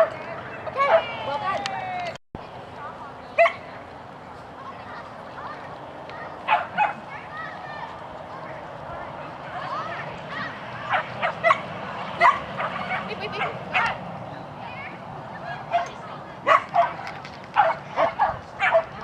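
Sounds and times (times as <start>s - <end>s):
dog barking: 6.5s - 7.0s, 10.9s - 11.6s, 12.2s - 14.0s, 15.7s - 17.0s, 17.6s - 19.0s.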